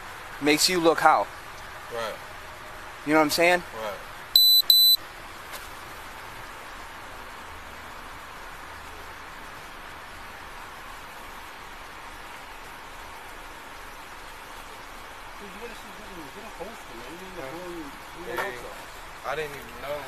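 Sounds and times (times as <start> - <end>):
faint background hiss: 0.0 - 20.0
high-pitched electronic beeps: 4.4 - 5.0.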